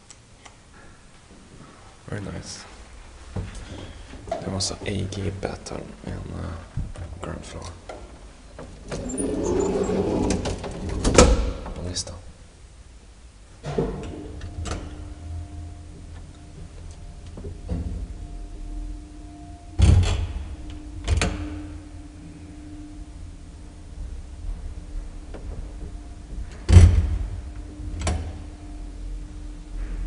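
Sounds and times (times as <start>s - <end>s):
elevator machinery hum: 0.0s - 30.0s
elevator clunks and thuds: 13.6s - 18.6s, 23.8s - 28.6s.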